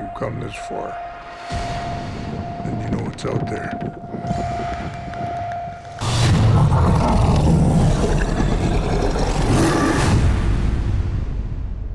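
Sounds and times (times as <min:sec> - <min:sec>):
dense rumbling swell: 0:01.5 - 0:11.9
deep cinematic hit: 0:04.0 - 0:08.8.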